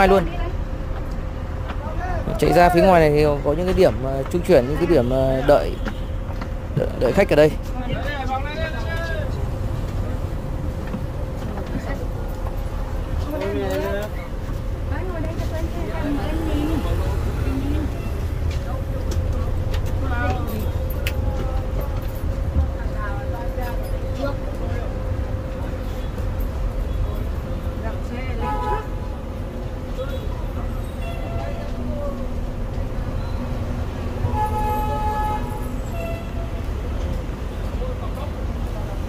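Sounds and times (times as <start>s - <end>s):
bus engine rumble: 0.0s - 39.0s
voices: 0.0s - 39.0s
short horn toot: 34.2s - 36.6s.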